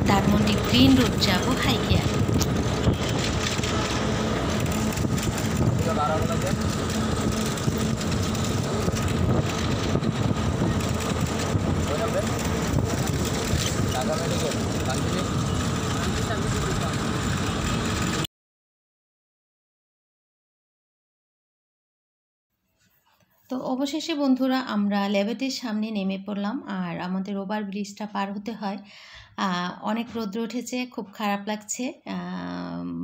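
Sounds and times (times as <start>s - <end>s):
bus engine and road noise: 0.0s - 18.3s.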